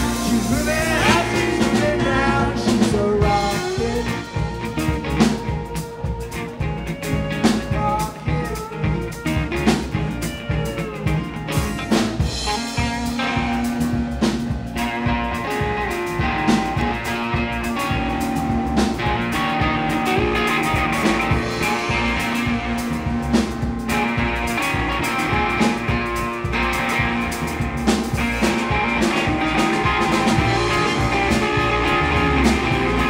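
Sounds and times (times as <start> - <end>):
drum kit beat: 0.0 - 33.0
electric bass: 0.0 - 33.0.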